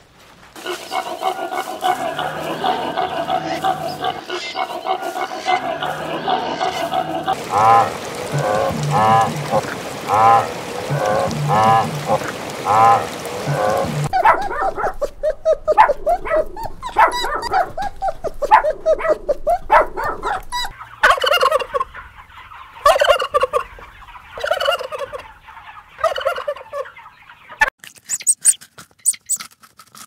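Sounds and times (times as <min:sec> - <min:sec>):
animal calls: 0:00.6 - 0:27.0.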